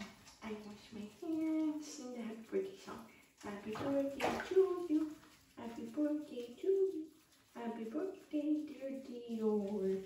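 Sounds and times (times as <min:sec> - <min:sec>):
water sloshing in bathtub: 0:00.0 - 0:10.0.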